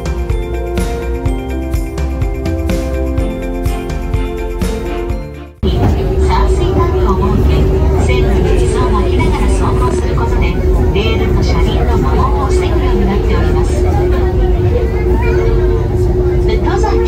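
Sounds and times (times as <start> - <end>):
train cabin rumble and hum: 0.0 - 17.0
people talking: 5.6 - 17.0.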